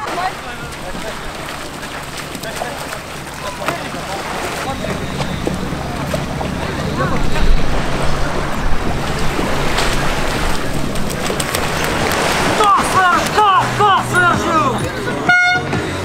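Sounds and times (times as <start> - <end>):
small surf breaking: 0.0 - 14.6
wind buffeting microphone: 0.0 - 15.1
low steady hum: 0.0 - 15.2
scattered voices: 0.0 - 16.0.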